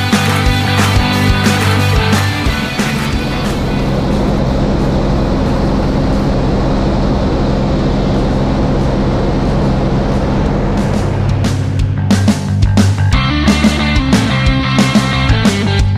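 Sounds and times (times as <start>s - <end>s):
small plane engine drone: 0.0s - 15.8s
background music: 0.0s - 15.9s
rushing air: 0.3s - 14.0s.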